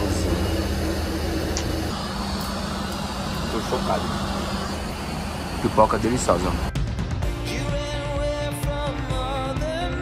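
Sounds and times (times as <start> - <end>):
airliner cabin hum: 0.0 - 6.7.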